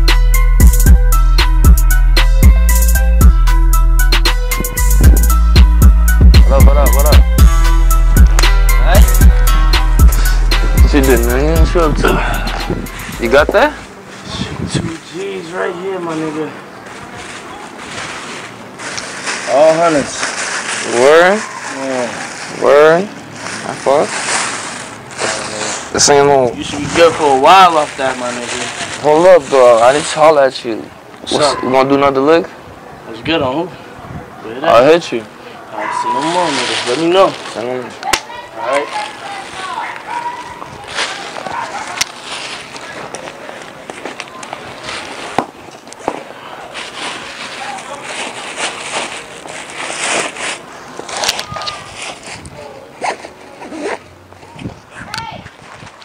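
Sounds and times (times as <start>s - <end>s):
outdoor background noise: 0.0s - 56.0s
person calling out: 10.2s - 13.2s
backpack being rummaged through: 53.0s - 54.0s.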